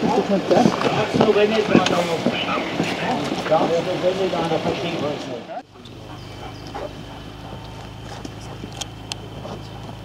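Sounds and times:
steady low hum: 0.0 - 10.0
faint dog sounds: 5.6 - 8.7.

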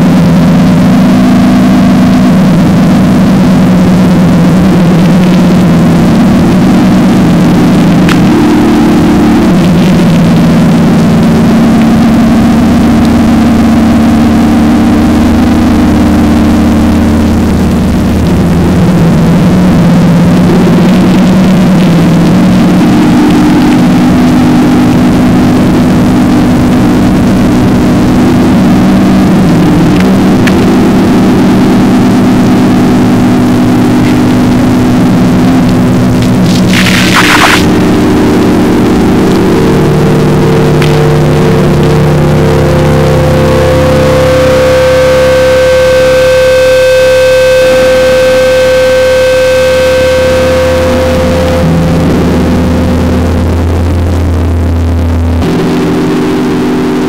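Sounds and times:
distorted guitar and bass chords: 0.0 - 57.0.

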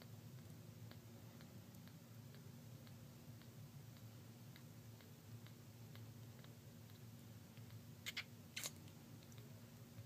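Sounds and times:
kitten suckling on bottle: 0.0 - 10.0.

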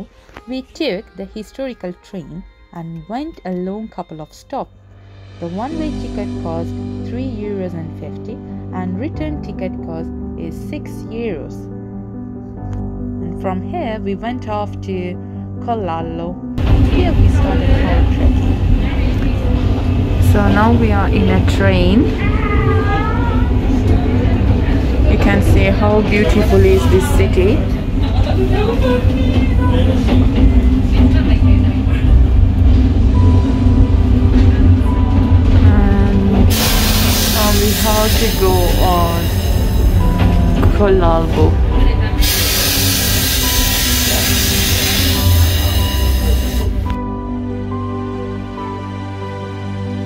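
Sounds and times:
background music: 0.0 - 50.0
electric railcar rumble: 16.6 - 47.2.

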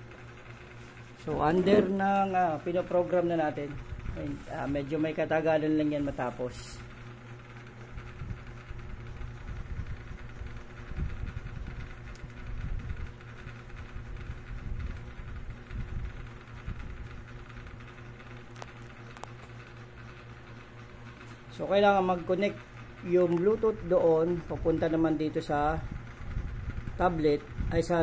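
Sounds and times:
low mechanical hum: 0.0 - 28.0.

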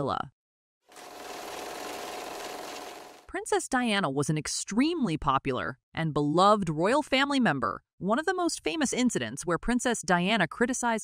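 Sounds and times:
film projector whirring clatter: 0.9 - 3.3.

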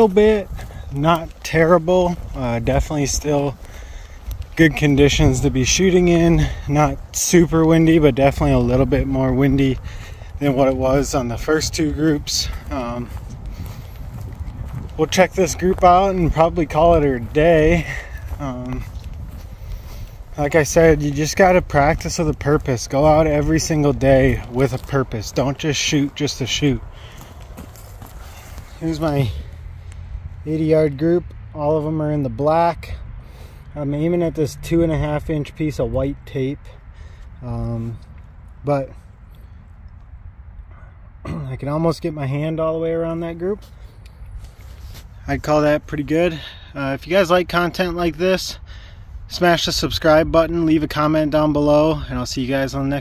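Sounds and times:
wind rumbling on microphone: 0.0 - 41.3.

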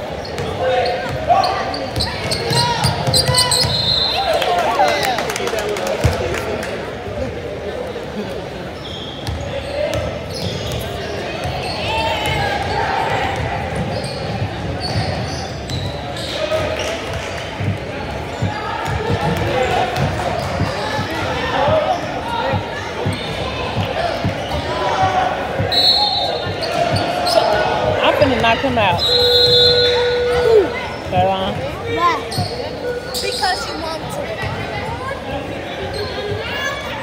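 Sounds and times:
sneaker squeaks: 0.0 - 4.4, 8.6 - 37.0
indistinct chatter: 0.0 - 37.0.

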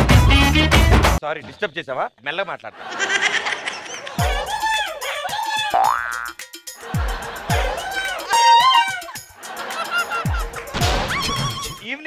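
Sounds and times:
music: 0.0 - 1.2, 4.0 - 12.0.

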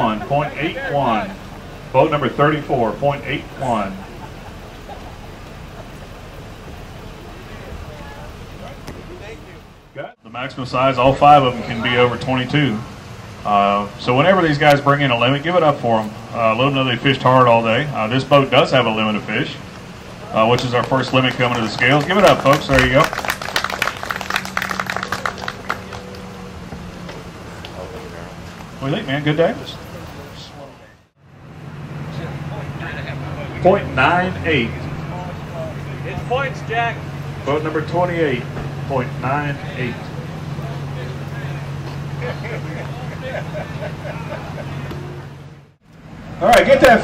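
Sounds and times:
steady low hum: 0.0 - 47.0
vehicle engine idling: 0.0 - 47.0
crowd applauding: 20.0 - 26.8.

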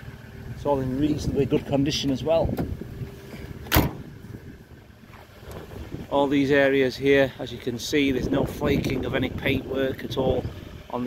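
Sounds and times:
tailgate slamming shut: 3.6 - 4.1.

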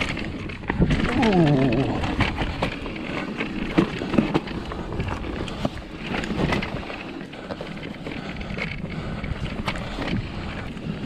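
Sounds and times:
bike rattling clicks: 0.0 - 11.0
bike tyres on loose dirt: 0.0 - 11.0.

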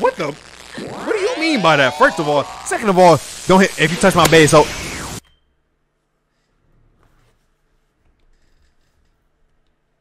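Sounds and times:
voice with effects: 0.7 - 4.8.

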